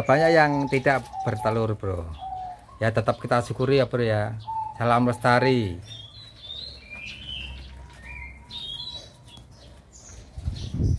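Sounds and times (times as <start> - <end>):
small birds chirping: 0.0 - 10.9.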